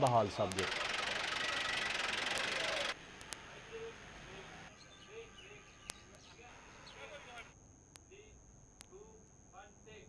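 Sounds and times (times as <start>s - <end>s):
vehicle engine running: 0.5s - 3.0s.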